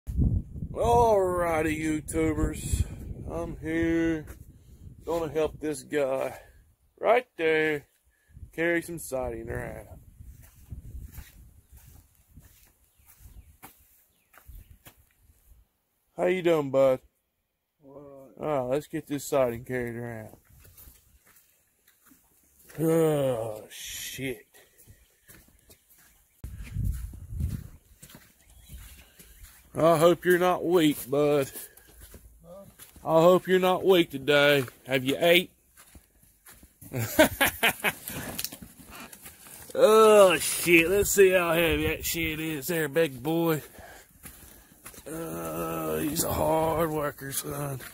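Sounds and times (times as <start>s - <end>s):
low wind rumble: 0.1s - 5.1s, 26.4s - 27.8s
footsteps on dirt and gravel: 9.8s - 15.6s, 19.4s - 47.9s
man laughing: 36.8s - 38.4s, 39.8s - 41.1s, 45.0s - 47.7s.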